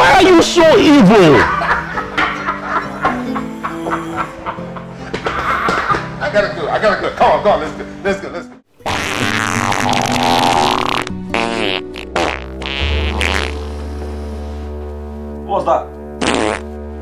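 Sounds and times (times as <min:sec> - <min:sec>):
background music with low bass: 0:00.2 - 0:17.0.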